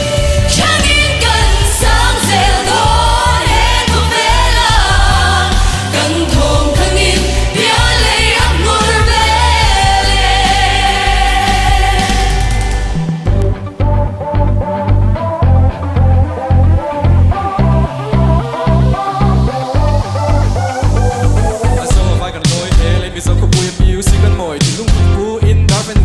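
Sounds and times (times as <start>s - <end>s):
woman singing: 0.0s - 13.0s
amplified band with heavy bass: 0.0s - 26.0s
man singing: 21.6s - 26.0s.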